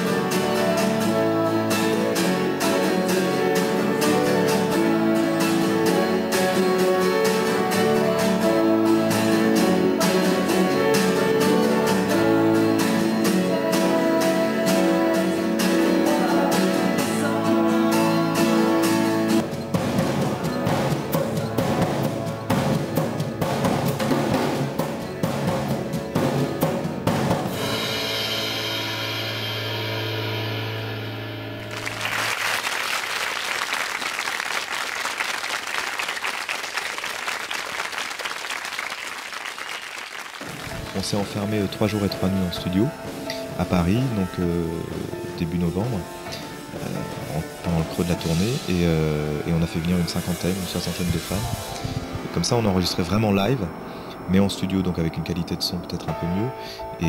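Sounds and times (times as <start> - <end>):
person singing: 0.0 - 19.4
guitar: 0.0 - 33.1, 40.4 - 57.0
drum kit: 0.0 - 33.2, 40.4 - 54.6
applause: 31.6 - 41.4.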